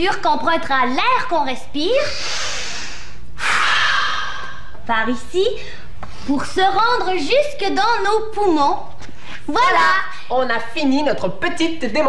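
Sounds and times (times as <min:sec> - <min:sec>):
person breathing in deeply: 0:02.1 - 0:04.8.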